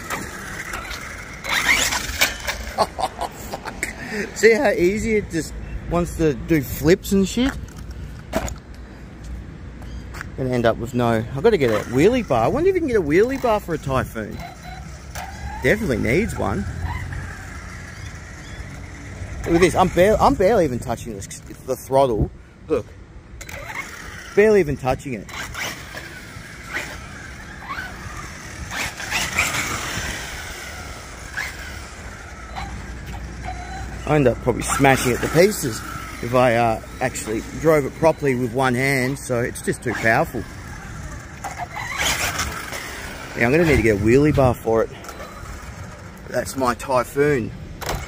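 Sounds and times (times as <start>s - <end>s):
electric motor and tyre burst: 0.0s - 3.0s, 23.4s - 46.9s.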